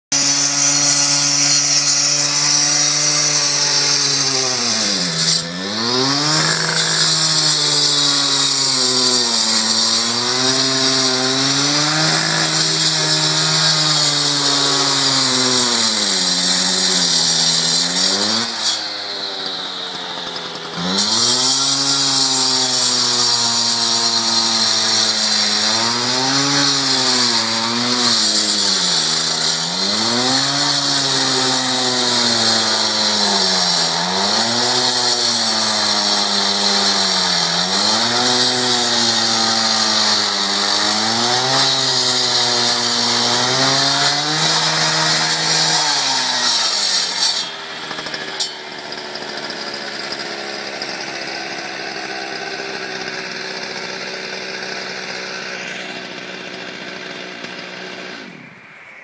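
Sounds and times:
cut-off saw engine: 0.1 - 59.0
saw disc grinding asphalt: 0.1 - 59.0.

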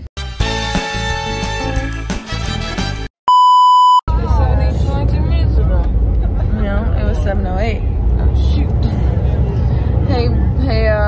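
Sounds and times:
background music: 0.2 - 3.1
censor bleep: 3.3 - 4.0
moving bus rumble: 4.1 - 11.0.

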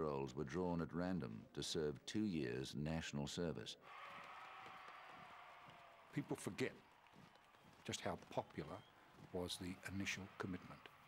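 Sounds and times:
soldiers marching on pavement: 4.0 - 11.0.

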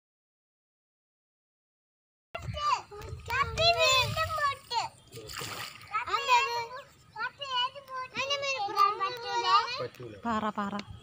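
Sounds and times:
children chattering: 2.4 - 10.8
oar splashing in water: 5.1 - 6.0.

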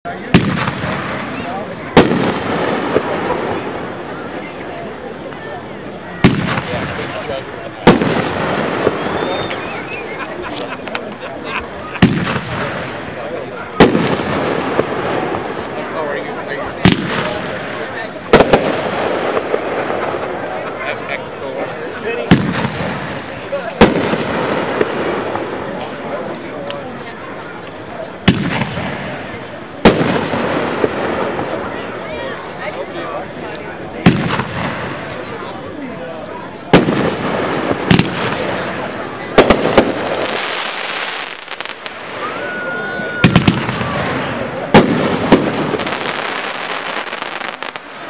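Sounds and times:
firework cake sharp loud bangs: 0.2 - 4.0, 6.2 - 9.9, 12.0 - 15.7, 16.8 - 20.4, 22.2 - 25.7, 28.2 - 31.7, 34.0 - 35.2, 36.7 - 42.0, 43.2 - 48.0.

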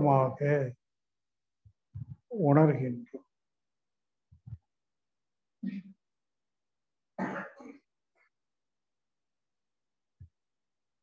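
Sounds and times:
man clearing his throat: 7.2 - 7.9.

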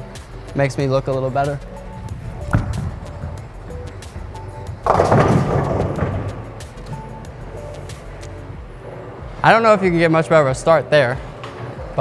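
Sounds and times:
faint background music: 0.0 - 12.0
bowling pins clattering: 1.2 - 9.2
bowling ball rolling on wooden lane: 1.8 - 8.2.

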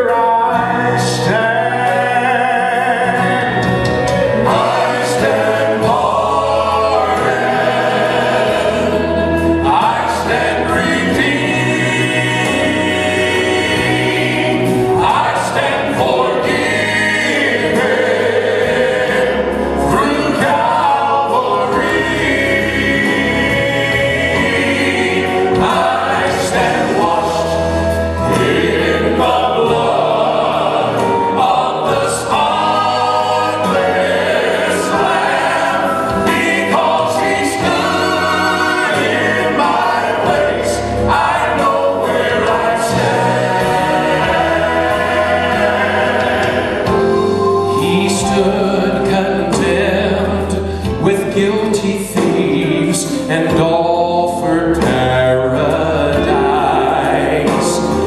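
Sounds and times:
male quartet singing in harmony: 0.0 - 58.0.

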